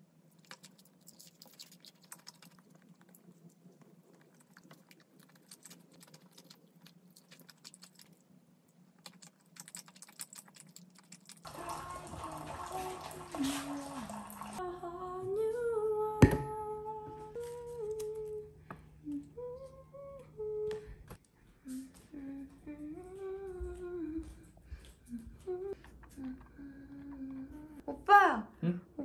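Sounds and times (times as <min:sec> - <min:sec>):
chewing and mouth sounds: 0:00.3 - 0:11.5.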